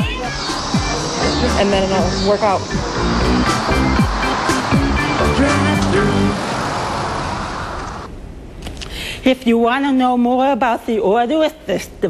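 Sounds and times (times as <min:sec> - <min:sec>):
music: 0:00.0 - 0:06.4
car driving away: 0:00.3 - 0:08.1.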